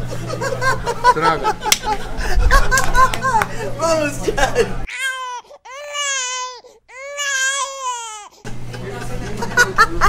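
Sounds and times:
laughter: 0:00.0 - 0:03.5, 0:04.2 - 0:04.9, 0:08.6 - 0:10.0
people talking: 0:00.3 - 0:04.9, 0:08.6 - 0:10.0
baby crying: 0:04.9 - 0:08.4.

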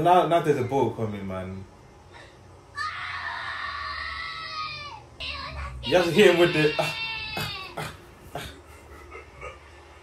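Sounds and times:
goat bleating: 0:05.2 - 0:07.8.

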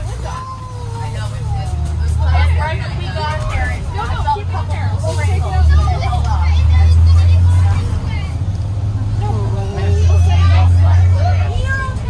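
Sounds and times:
bus engine and road rumble: 0:00.0 - 0:12.0
children's voices: 0:00.0 - 0:12.0.

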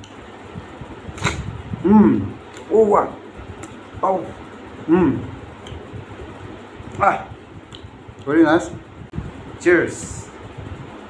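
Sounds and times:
mouth click: 0:01.1 - 0:01.5, 0:02.1 - 0:02.7, 0:05.2 - 0:05.8, 0:07.7 - 0:08.3
person humming: 0:01.2 - 0:02.4, 0:04.0 - 0:05.4.

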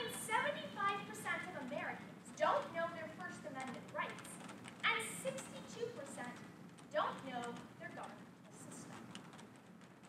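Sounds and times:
young woman giving a speech: 0:00.0 - 0:09.0.

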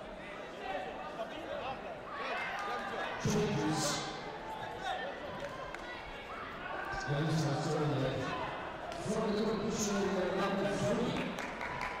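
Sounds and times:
background chatter: 0:00.0 - 0:12.0
man speaking in a hall: 0:02.8 - 0:04.3, 0:06.8 - 0:11.4.

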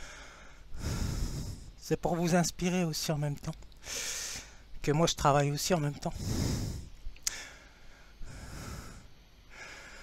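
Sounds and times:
man breathing heavily through nose: 0:00.0 - 0:01.8, 0:03.8 - 0:04.8, 0:06.0 - 0:10.0.

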